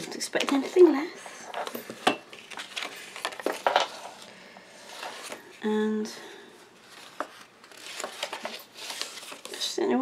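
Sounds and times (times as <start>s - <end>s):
paper rustling: 1.5s - 5.6s, 6.8s - 9.8s.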